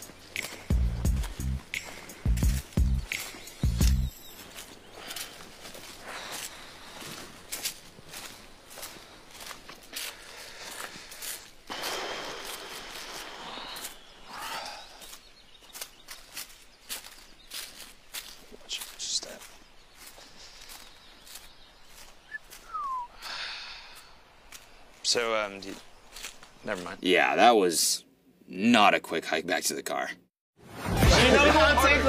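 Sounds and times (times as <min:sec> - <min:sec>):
bass-heavy music beat: 0:00.0 - 0:04.2
footsteps on leafy dirt trail: 0:00.0 - 0:27.0.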